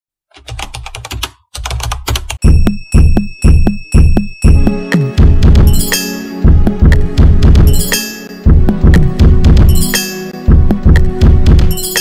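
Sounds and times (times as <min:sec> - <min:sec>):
computer keyboard typing: 0:00.3 - 0:02.4.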